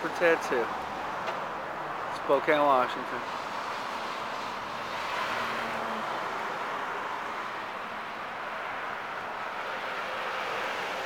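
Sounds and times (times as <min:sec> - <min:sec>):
road traffic rushing: 0:00.0 - 0:11.0.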